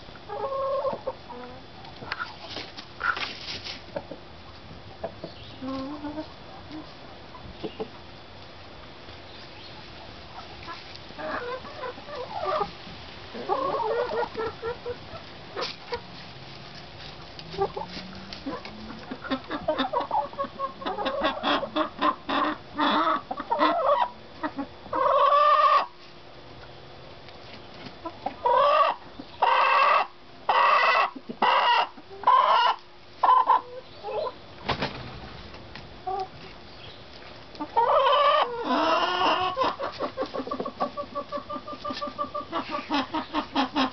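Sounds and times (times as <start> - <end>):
chickens clucking: 0.0 - 43.9
chickens squawking: 0.2 - 3.3, 3.9 - 8.0, 9.4 - 16.2, 17.0 - 26.0, 28.0 - 34.5, 36.0 - 43.9.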